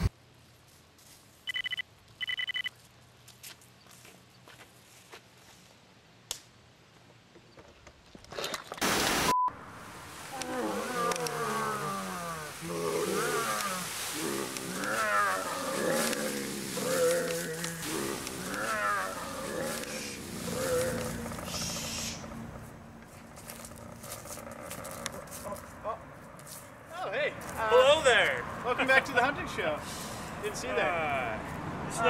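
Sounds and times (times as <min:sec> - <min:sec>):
brief beep: 0:01.5 - 0:02.7, 0:09.3 - 0:09.6
burst of static: 0:08.8 - 0:20.4
wordless cries or roars: 0:09.9 - 0:21.8.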